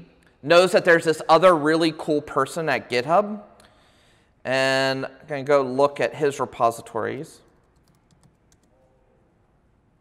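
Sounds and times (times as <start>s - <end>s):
laptop keyboard keystrokes: 7.6s - 8.7s.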